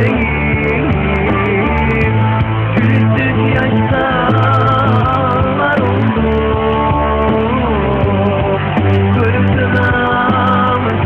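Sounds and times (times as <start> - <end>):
rock music with bending guitar: 0.0 - 11.0.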